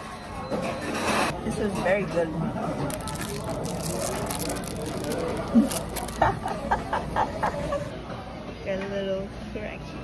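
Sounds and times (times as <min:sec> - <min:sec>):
indistinct chatter of diners: 0:00.0 - 0:10.0.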